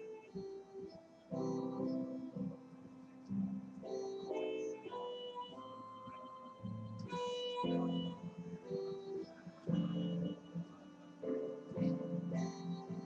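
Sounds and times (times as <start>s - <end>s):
instrumental melody: 0.0s - 13.0s.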